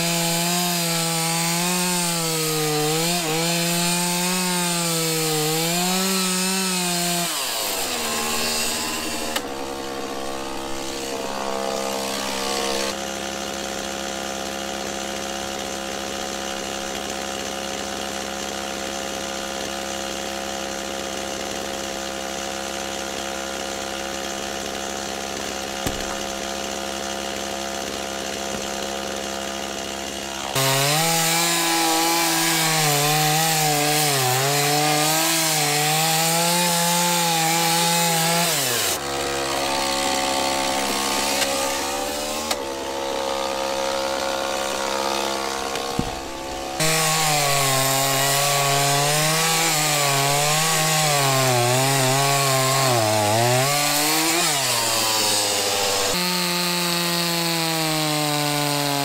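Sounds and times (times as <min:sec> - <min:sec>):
chainsaw cutting log: 0:00.0 - 0:59.0
chainsaw running: 0:00.0 - 0:59.0.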